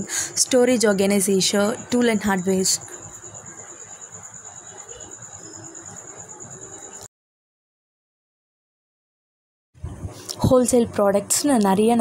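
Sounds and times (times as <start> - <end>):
low background noise: 0.0 - 7.1
high-pitched insect trill: 0.3 - 7.1.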